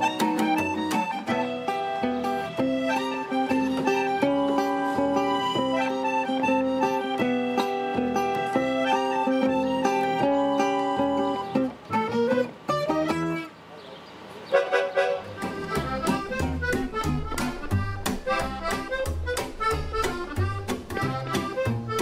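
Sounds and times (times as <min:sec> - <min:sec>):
upright double bass: 0:00.0 - 0:13.4, 0:15.0 - 0:22.0
accordion melody: 0:00.0 - 0:13.6, 0:14.5 - 0:22.0
acoustic guitar strumming beat: 0:00.0 - 0:13.6, 0:14.6 - 0:22.0.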